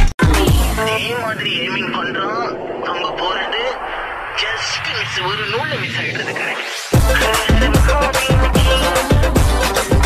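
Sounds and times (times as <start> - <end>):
remixed background music: 0.0 - 10.0
pitch-bent voice: 0.2 - 8.9.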